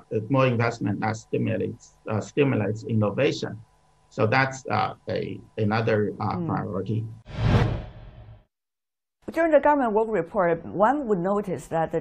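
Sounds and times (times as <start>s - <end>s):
whoosh transition: 7.3s - 8.4s.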